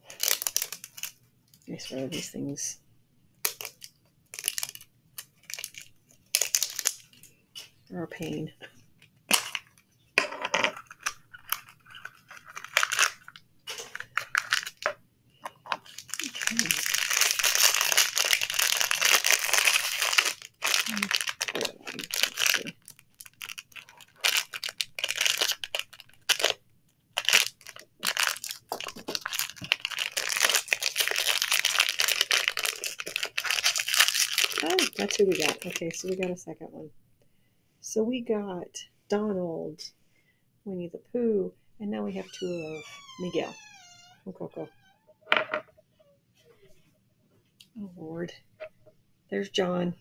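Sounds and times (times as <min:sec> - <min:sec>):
plastic wrapper crinkling: 0:00.0 - 0:02.3, 0:03.4 - 0:07.3, 0:10.7 - 0:36.3.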